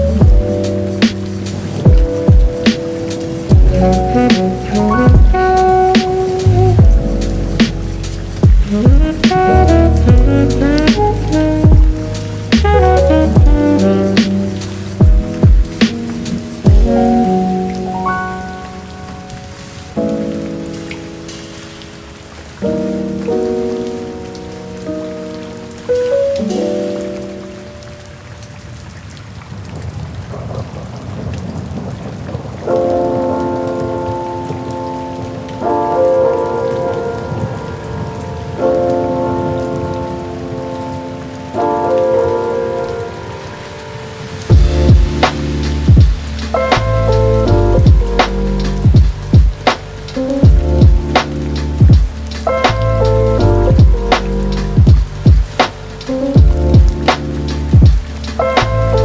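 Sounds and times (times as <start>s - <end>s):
low rumble of thunder: 0.0s - 19.5s, 29.3s - 41.9s, 44.2s - 59.0s
slow chill-beat music: 0.0s - 28.9s, 32.0s - 59.0s
rain falling steadily: 0.0s - 59.0s.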